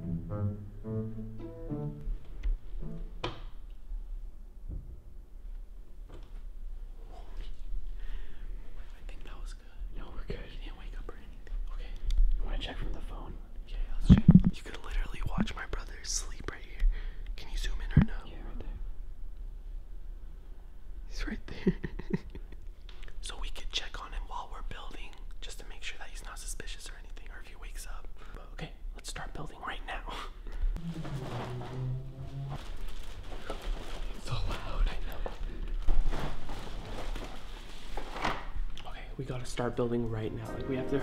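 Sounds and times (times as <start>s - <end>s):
hushed whispering voices: 8.8s - 16.8s, 17.4s - 18.8s, 23.2s - 30.3s, 34.2s - 35.6s.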